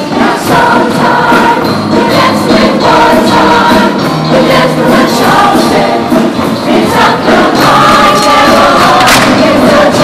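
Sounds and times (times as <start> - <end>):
band accompaniment with steady beat: 0.0 - 10.0
mixed choir singing: 0.0 - 10.0.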